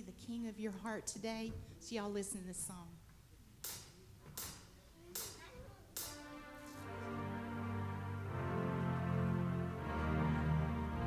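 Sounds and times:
drumstick count-in clicks: 6.0s - 6.3s
band playing: 6.0s - 11.0s.

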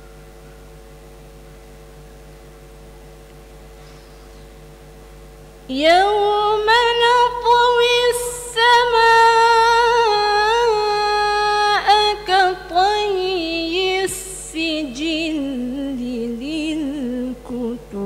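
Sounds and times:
woman chanting melodically: 5.7s - 18.0s.

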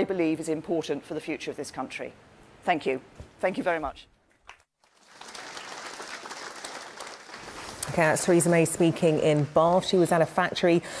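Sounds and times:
audience applauding: 4.8s - 7.8s.

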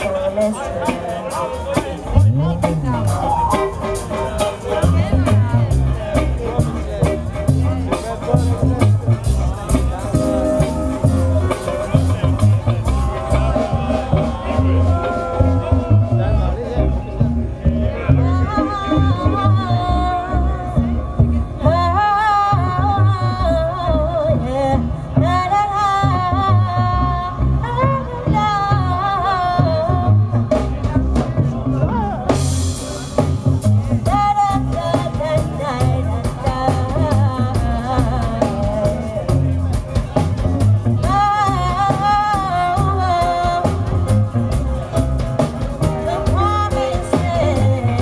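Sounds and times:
guitar: 0.0s - 48.0s
reggae band with bass line: 0.0s - 48.0s
person singing: 10.2s - 16.4s, 45.8s - 48.0s
woman singing reggae: 18.2s - 21.0s, 21.6s - 30.6s, 33.9s - 39.6s, 41.0s - 44.3s, 45.8s - 48.0s.

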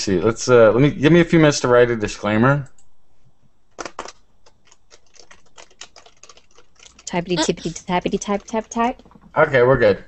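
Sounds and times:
computer keyboard typing: 3.8s - 9.3s.

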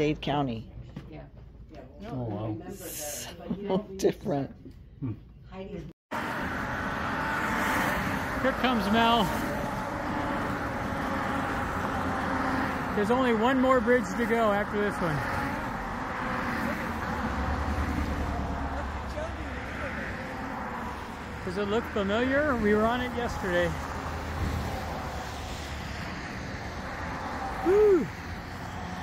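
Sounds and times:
cars driving past: 6.1s - 29.0s
road traffic passing: 6.1s - 29.0s.

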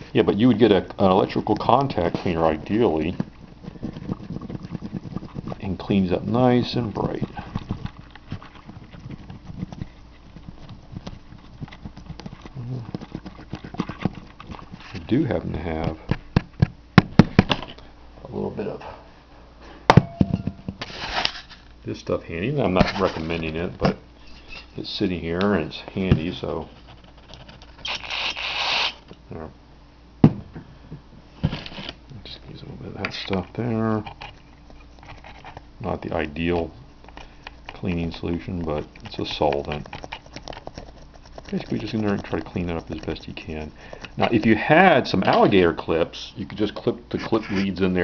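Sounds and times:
low steady hum: 0.0s - 48.0s
fingers scraping connector pins: 0.6s - 16.0s, 33.0s - 45.5s.

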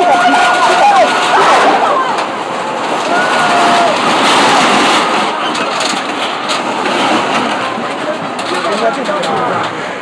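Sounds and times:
debris knocking and clattering: 0.0s - 9.4s
excavator engine running: 0.0s - 10.0s.

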